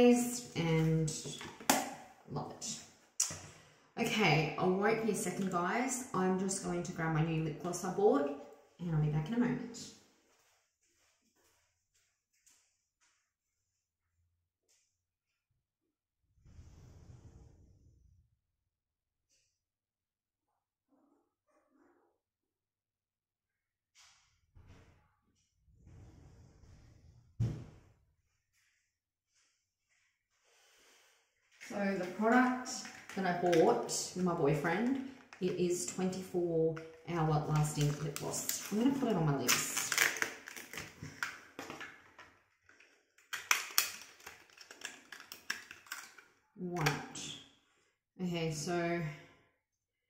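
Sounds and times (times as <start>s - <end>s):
cardboard packaging handled: 39.5s - 46.1s.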